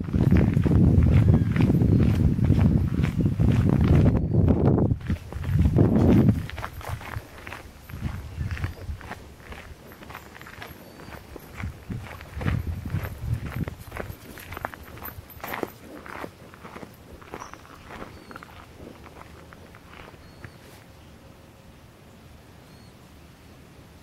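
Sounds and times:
wind rumble on microphone: 0.0 - 20.7
footsteps on gravel: 0.0 - 20.9.

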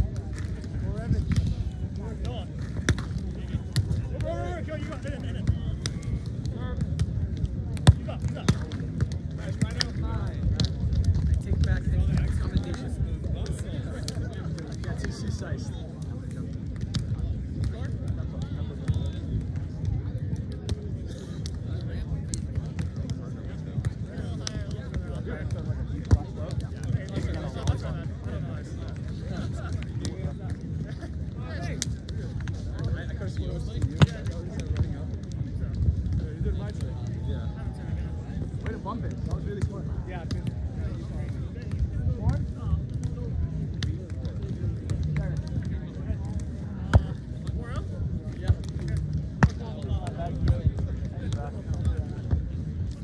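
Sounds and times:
crowd voices: 0.0 - 53.0
hands slapping volleyball: 48.4 - 50.5.

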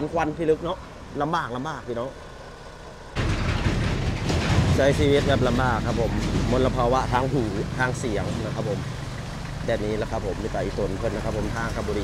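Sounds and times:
truck passing by: 0.0 - 12.0.

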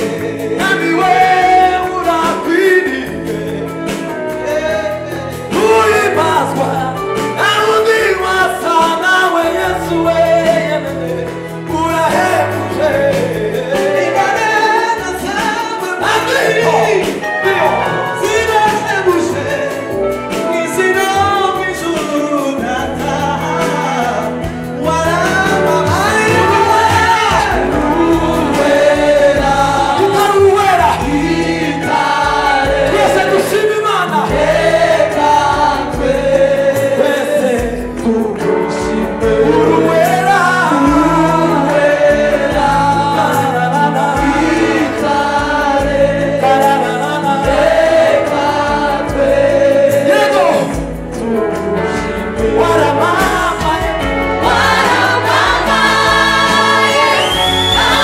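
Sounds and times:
choir singing gospel song: 0.0 - 58.0
instrumental accompaniment with beat: 0.0 - 58.0.

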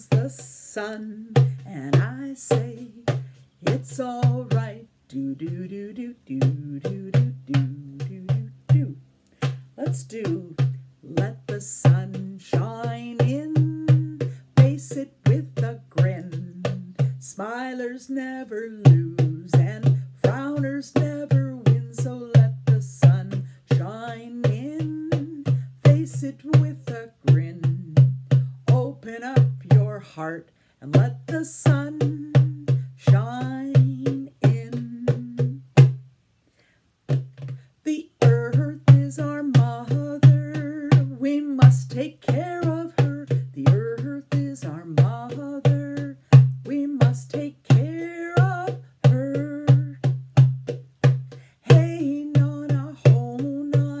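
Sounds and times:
hand drum beating: 0.0 - 4.8, 5.4 - 36.0, 37.1 - 54.0
woman singing: 0.0 - 36.0, 37.2 - 54.0.

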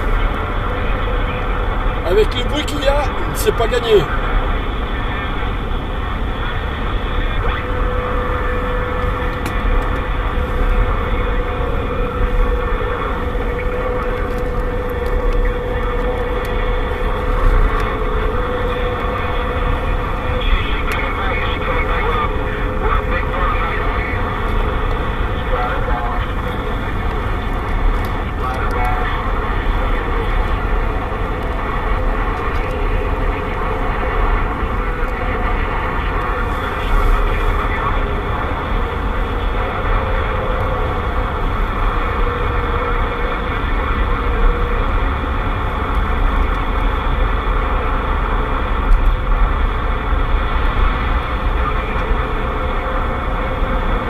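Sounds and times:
faint distant radio voices: 0.0 - 54.0
radio static hiss: 0.0 - 54.0
vehicle driving rumble: 0.0 - 54.0.

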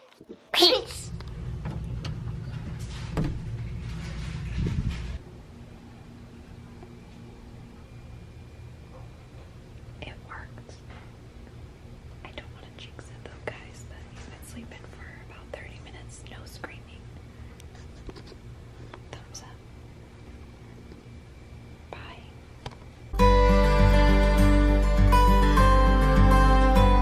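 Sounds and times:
steady low hum: 0.9 - 27.0
soft whispering: 10.0 - 10.9, 12.2 - 17.1, 19.0 - 19.6, 21.9 - 22.4.

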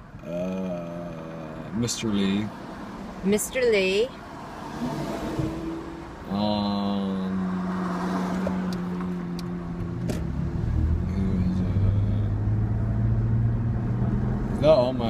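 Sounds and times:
person humming: 0.2 - 1.7, 11.1 - 12.4
car cabin rumble: 4.8 - 6.6.

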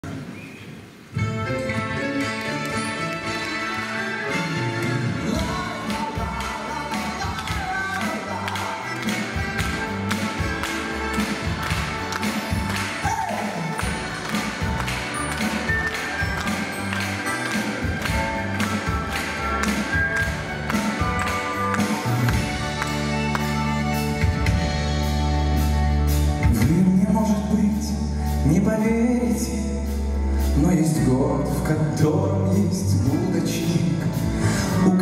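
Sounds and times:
orchestra with drum kit: 1.2 - 28.6.

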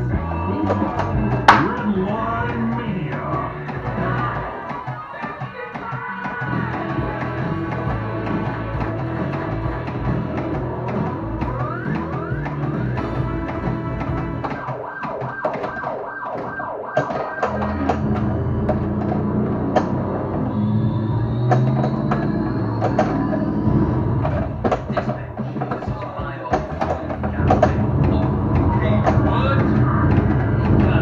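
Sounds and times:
pinball music and siren effects: 0.0 - 31.0
rising siren-like tone: 10.6 - 24.7.

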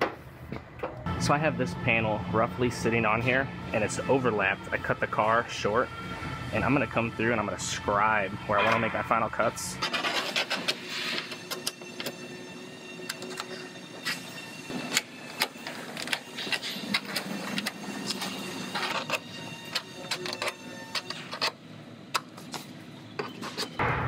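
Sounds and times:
scribe scratching sheet metal: 9.8 - 11.9.

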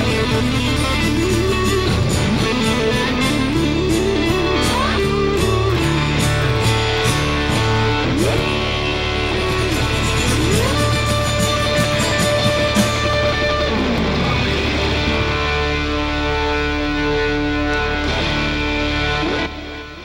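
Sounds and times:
bass guitar line: 0.0 - 20.0
finger-picked guitar melody: 0.0 - 20.0.

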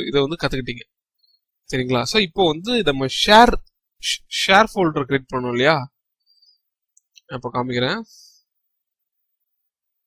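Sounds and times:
person speaking: 1.6 - 6.0.

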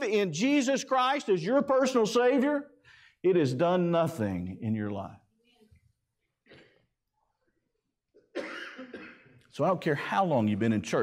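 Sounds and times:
man coughing: 8.2 - 9.4.

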